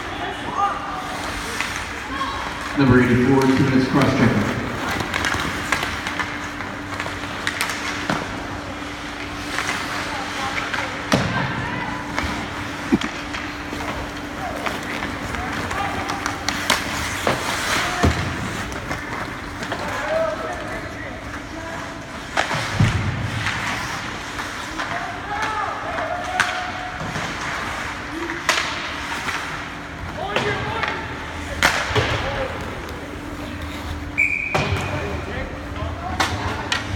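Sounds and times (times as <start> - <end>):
steady hum: 1.2 - 19.9
sticks and puck knocking: 12.8 - 13.6.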